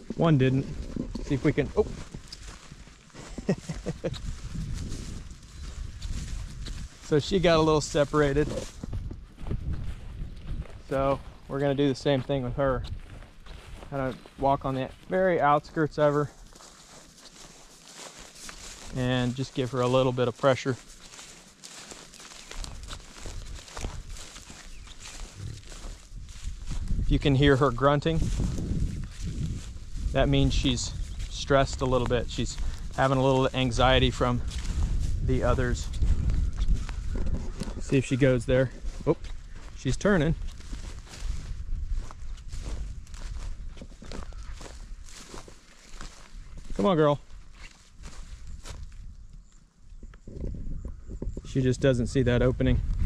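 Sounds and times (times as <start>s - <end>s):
footsteps through tall grass: 0.0s - 53.0s.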